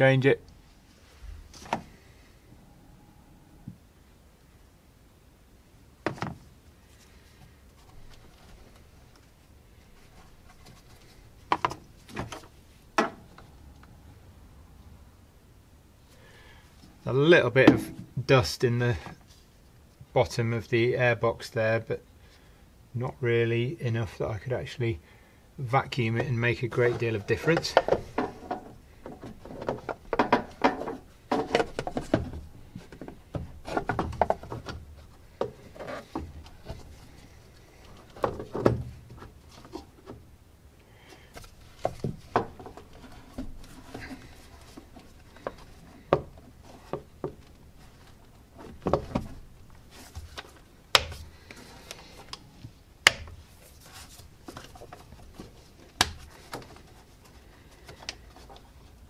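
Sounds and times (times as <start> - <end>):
plastic knocking and rubbing: 9.9 - 13.5, 26.2 - 40.2, 41.3 - 59.0.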